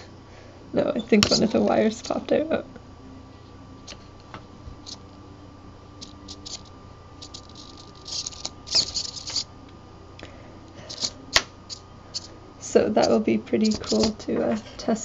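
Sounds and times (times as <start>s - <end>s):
scratchy rustles of wire: 6.0s - 9.5s.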